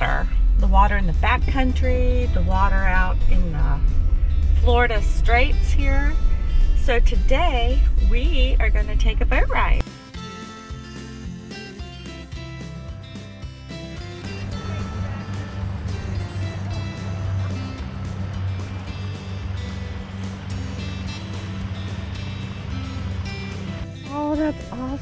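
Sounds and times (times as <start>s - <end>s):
boat motor humming: 0.0s - 9.8s, 11.0s - 25.0s
water noise: 0.0s - 9.8s, 14.1s - 25.0s
background music: 0.0s - 25.0s.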